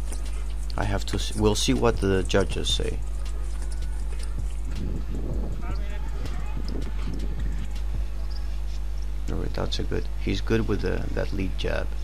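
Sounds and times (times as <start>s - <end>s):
steady low hum: 0.0s - 12.0s
faint voices: 5.5s - 8.2s.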